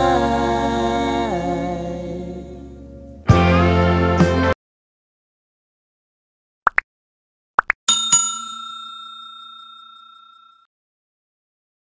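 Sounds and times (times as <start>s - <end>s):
notification bell ding: 7.9s - 10.7s.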